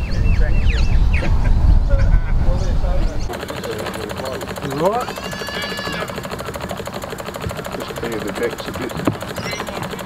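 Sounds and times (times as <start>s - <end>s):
small steam engine chuffing: 3.3s - 10.0s.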